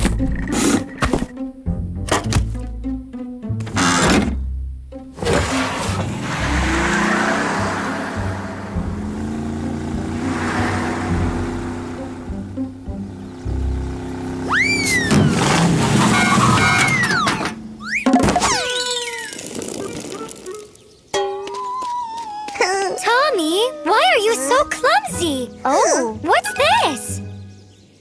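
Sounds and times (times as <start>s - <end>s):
background music: 0.0s - 14.5s, 21.0s - 28.0s
truck engine running: 5.2s - 17.8s
swooping cartoon whistle effects: 14.4s - 15.4s, 16.0s - 19.4s.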